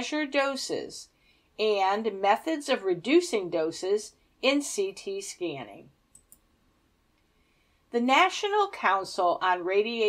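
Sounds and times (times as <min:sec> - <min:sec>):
woman talking: 0:00.0 - 0:05.9, 0:08.0 - 0:10.0.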